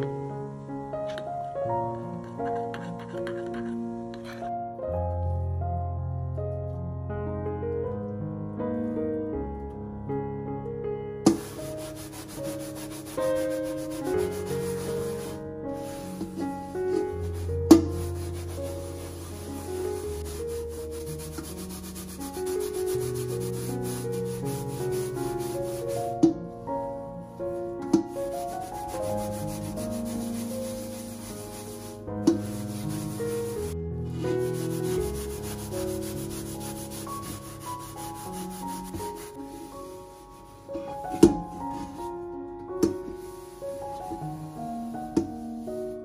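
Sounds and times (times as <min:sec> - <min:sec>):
soft background music: 0:00.0 - 0:46.0
sponge scrubbing metal pan: 0:11.3 - 0:26.2, 0:28.2 - 0:42.1.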